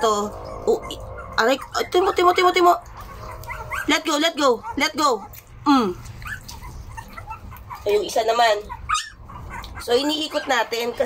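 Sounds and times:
low steady hum: 0.0 - 11.0
puppies whimpering: 0.0 - 11.0.

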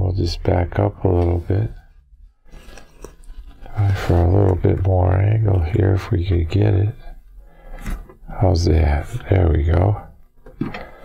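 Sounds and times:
man speaking: 0.0 - 1.8, 3.7 - 7.2, 8.3 - 10.2.

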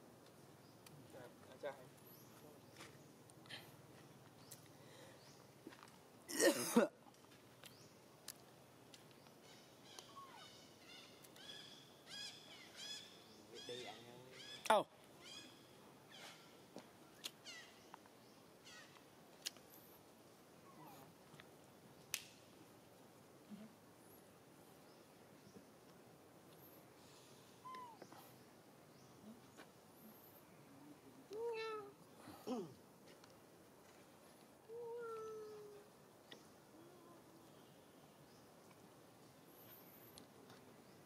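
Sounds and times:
young monkey coo call: 9.9 - 15.5, 27.6 - 28.2
monkey squeaky calls: 27.7 - 28.0.

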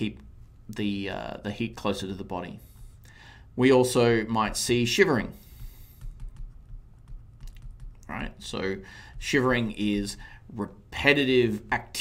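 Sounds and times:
stylus clicks and taps on desk: 5.4 - 8.3.

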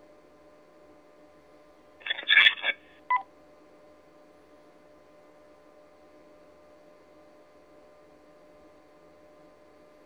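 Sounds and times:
faint steady hum: 0.0 - 10.0
high radio beeps: 2.1 - 3.2.

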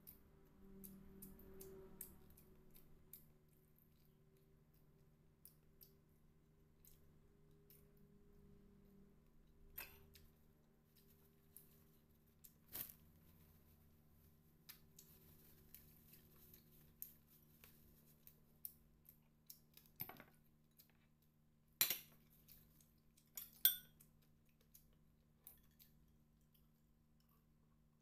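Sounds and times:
glass bowl on ceramic plate: 23.4 - 24.0
tableware clinking: 23.4 - 24.0.

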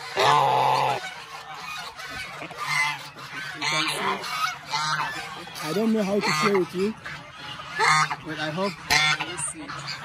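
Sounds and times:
goose honking: 0.0 - 10.0.

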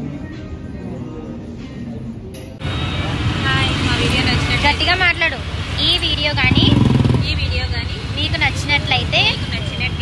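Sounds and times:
road traffic rumble: 2.6 - 10.0
woman speaking: 3.4 - 10.0.

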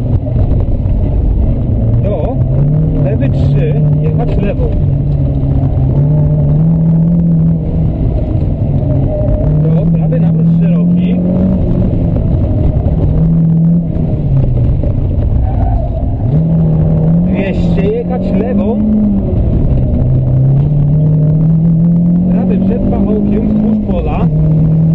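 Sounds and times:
car engine revving with gear changes: 0.0 - 24.9.

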